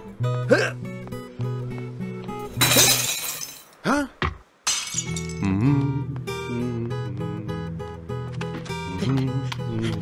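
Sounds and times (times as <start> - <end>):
plucked-string film music: 5.0 - 10.0.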